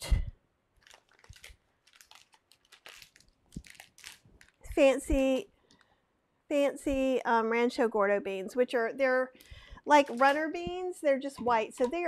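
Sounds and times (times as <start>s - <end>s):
plastic bag of beans crinkling: 0.8s - 5.8s, 9.4s - 10.8s.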